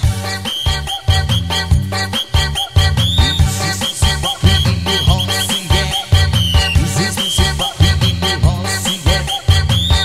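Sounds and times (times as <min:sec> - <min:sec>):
heavy bass beat: 0:00.0 - 0:10.0.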